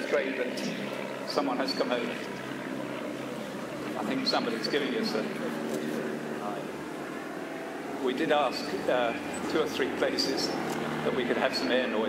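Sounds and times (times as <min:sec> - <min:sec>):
light aircraft flying overhead: 0:00.0 - 0:12.0.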